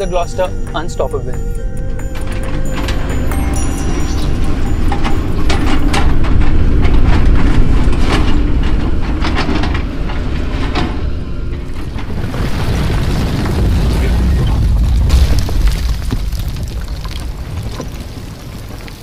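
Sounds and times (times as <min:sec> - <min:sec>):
background music: 0:00.0 - 0:07.8
bulldozer engine rumble: 0:00.0 - 0:19.0
rocks clattering: 0:11.7 - 0:19.0.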